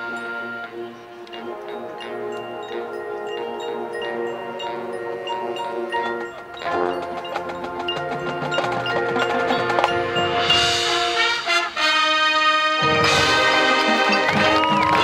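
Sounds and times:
mallet percussion and chimes: 0:00.0 - 0:11.3, 0:13.0 - 0:15.0
sustained brass chords: 0:00.0 - 0:15.0
drums: 0:06.2 - 0:11.8, 0:12.8 - 0:15.0.

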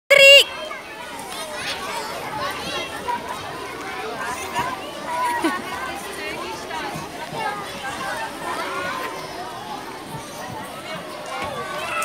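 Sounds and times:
children chattering and calling: 0:00.1 - 0:12.0.

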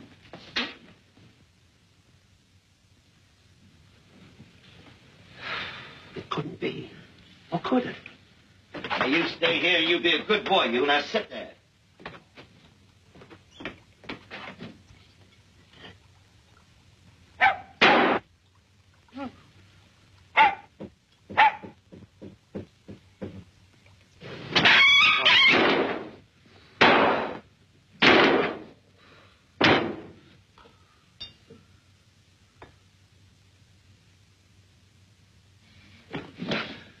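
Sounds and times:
small knocks and thuds: 0:12.0 - 0:15.4, 0:20.7 - 0:23.6, 0:36.1 - 0:36.9
dog barking: 0:17.4 - 0:17.8, 0:20.4 - 0:20.7, 0:21.3 - 0:21.8.

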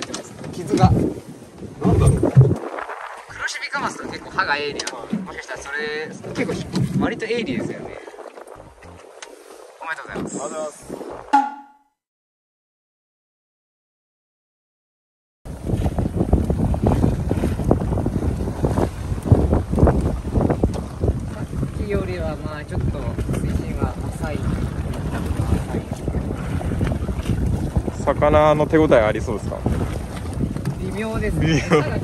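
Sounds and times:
wind buffeting microphone: 0:00.0 - 0:11.3, 0:15.5 - 0:32.0.

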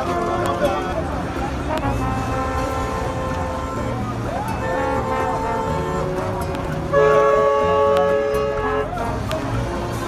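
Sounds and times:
car horns honking: 0:00.0 - 0:10.0
traffic rumble: 0:00.0 - 0:10.0.

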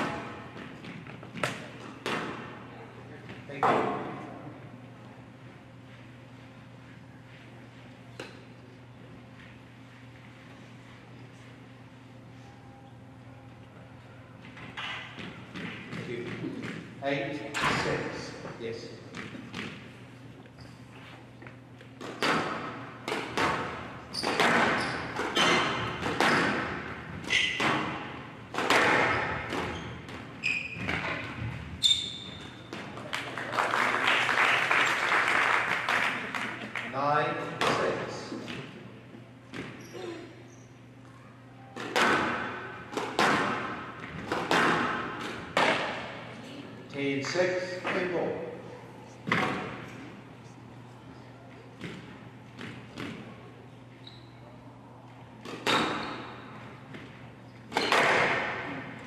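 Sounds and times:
squash ball hits: 0:22.0 - 0:31.6, 0:41.8 - 0:46.2, 0:49.2 - 0:49.9, 0:55.4 - 0:58.8
applause: 0:33.1 - 0:36.9.

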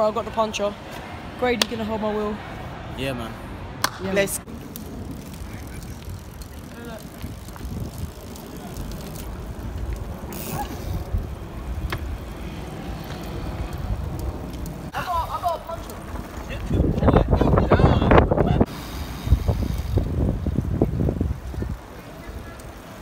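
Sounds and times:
bicycle tyres rumbling: 0:04.4 - 0:23.0
wind on microphone: 0:05.0 - 0:14.5, 0:16.4 - 0:22.6.

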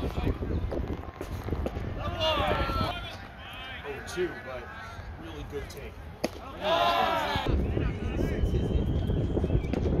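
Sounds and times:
wind rumbling on microphone: 0:00.0 - 0:03.0, 0:07.4 - 0:10.0.

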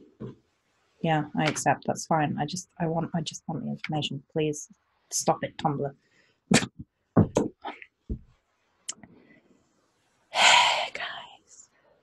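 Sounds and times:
woman whispering: 0:10.4 - 0:11.6.

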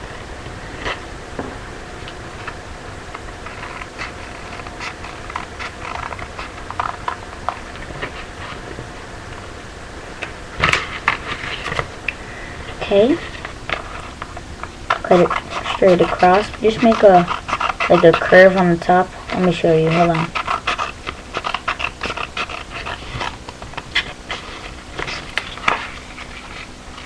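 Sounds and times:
paper rustle: 0:13.0 - 0:27.0
scissors snipping paper: 0:14.9 - 0:24.4.

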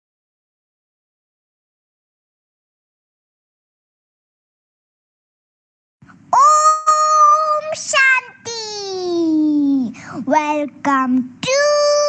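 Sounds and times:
high child-like singing voice: 0:06.4 - 0:12.0.

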